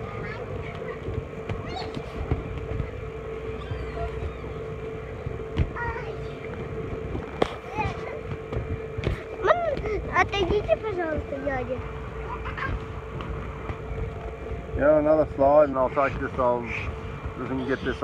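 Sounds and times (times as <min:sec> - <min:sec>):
electric air blower humming: 0:00.0 - 0:18.0
children's voices: 0:07.6 - 0:08.3.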